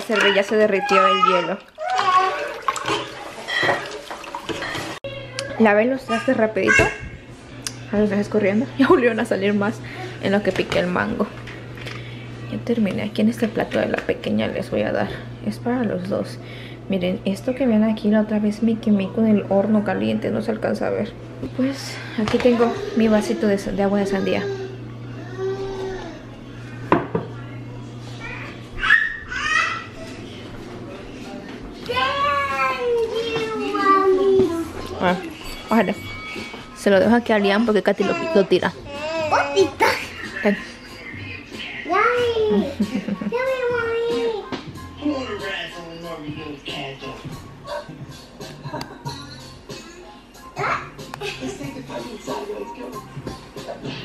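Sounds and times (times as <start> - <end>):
small splashes: 0.0 - 5.0
water sloshing in a pot: 0.0 - 5.1
kitchenware clacking: 0.0 - 5.5.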